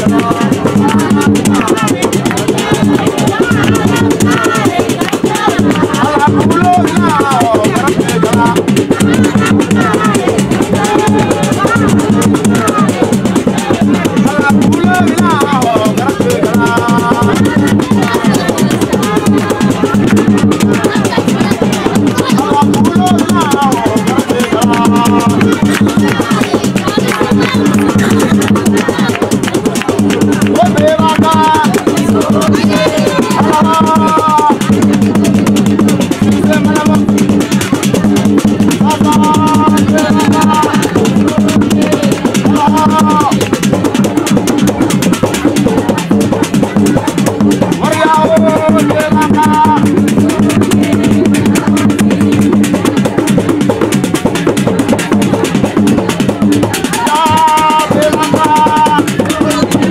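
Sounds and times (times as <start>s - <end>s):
drums and rattles beat: 0.0s - 59.9s
hand-clapping: 0.0s - 59.9s
voices singing: 0.0s - 59.9s.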